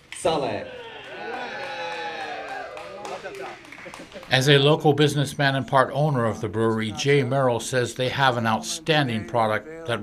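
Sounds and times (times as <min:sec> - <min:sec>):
group of people cheering: 0:00.5 - 0:03.7.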